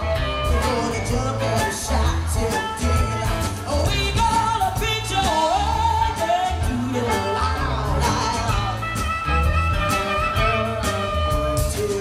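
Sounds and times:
woman singing lead vocal: 0.0 - 9.0
live rock band playing: 0.0 - 12.0.

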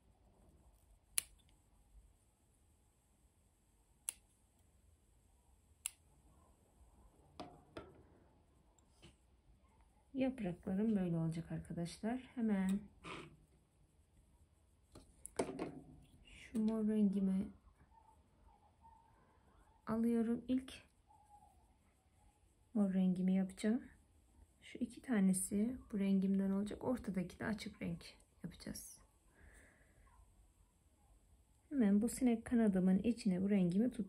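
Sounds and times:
scissors snipping thread: 1.1 - 1.6, 4.0 - 4.3.

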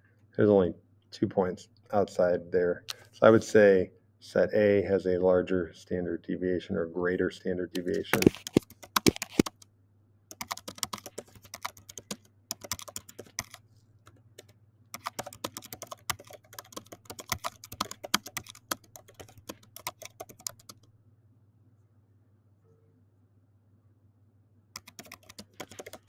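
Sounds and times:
computer keyboard typing: 7.8 - 9.6, 10.3 - 20.9, 24.8 - 26.0.

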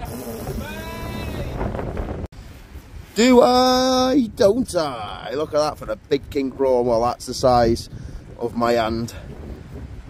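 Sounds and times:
strong wind buffeting microphone: 0.0 - 10.0.

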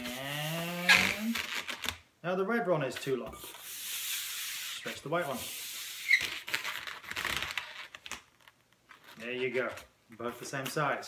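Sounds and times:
hands rubbing latex balloons: 0.0 - 2.0, 3.4 - 9.2.

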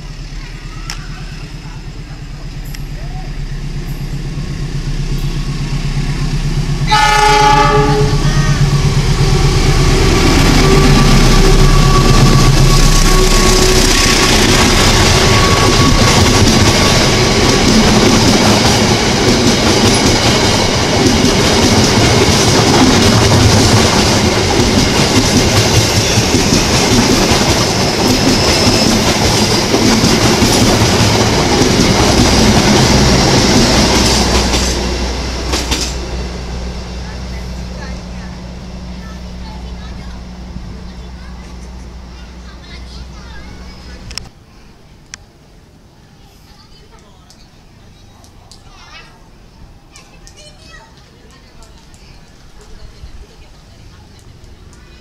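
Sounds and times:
locomotive engine rumbling: 0.0 - 55.0
wheels rushing on rails: 0.0 - 55.0
train horn blast: 6.8 - 9.0, 9.9 - 16.4.

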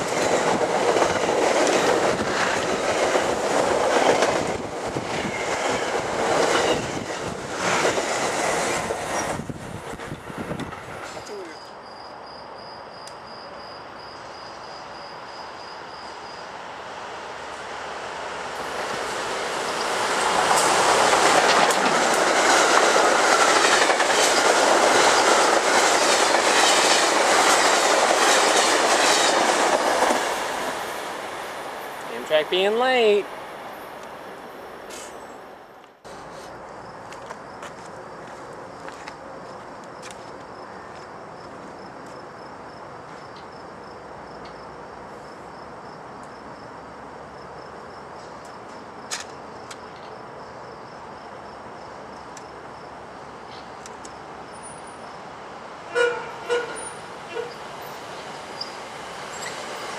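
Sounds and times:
train rail roar: 0.0 - 50.1, 50.8 - 59.9
train wheels clattering: 20.2 - 30.7.

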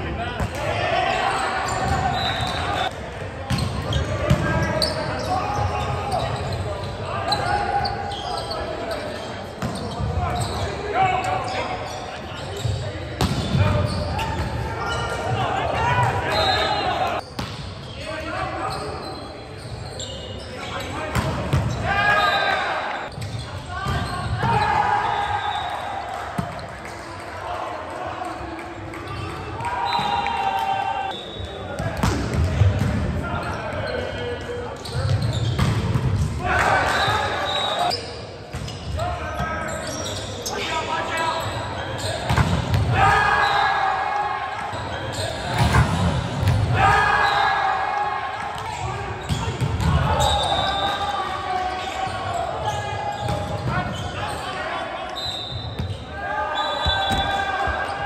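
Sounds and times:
players shouting in a gym: 0.0 - 17.3, 17.9 - 58.0.

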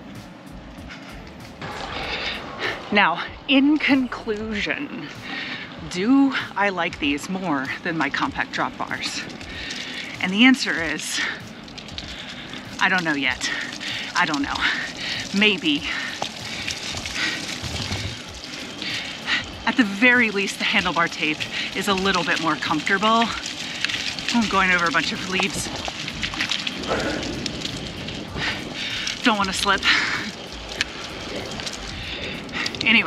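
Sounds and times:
bicycle tyres rolling over leaves: 0.0 - 33.0.

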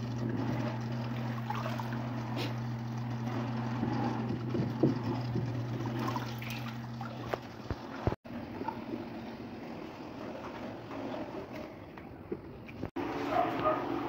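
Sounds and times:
water sloshing and splashing: 0.0 - 9.2.

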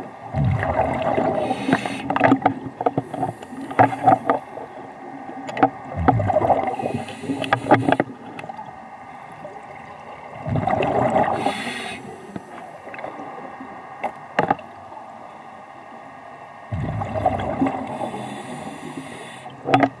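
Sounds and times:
scuba regulator breaths underwater: 1.3 - 2.2, 6.2 - 8.2, 10.6 - 12.6, 17.9 - 19.6.

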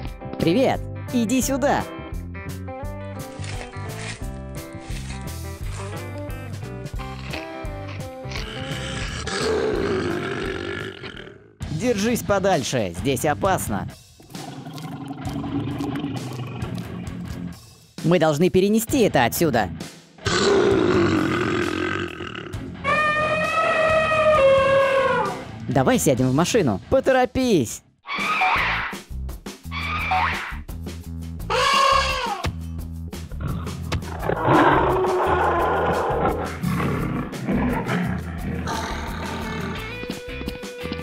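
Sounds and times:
elephant call: 22.8 - 25.4, 31.5 - 32.4
music with steady beat: 37.3 - 41.0.

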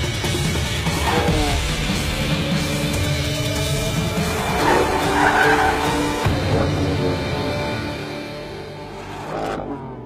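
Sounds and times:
rock music: 0.0 - 9.6
car tyres skidding: 4.1 - 6.7.

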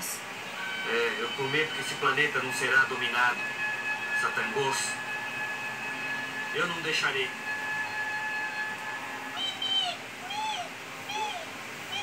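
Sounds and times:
faint steady high tone: 0.2 - 12.0.

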